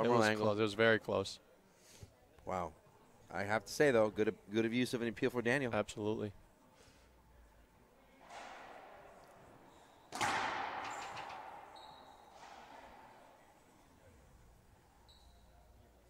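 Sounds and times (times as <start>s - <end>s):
racquetball hits: 8.2s - 13.5s
sneakers squeaking on hardwood: 10.9s - 12.6s.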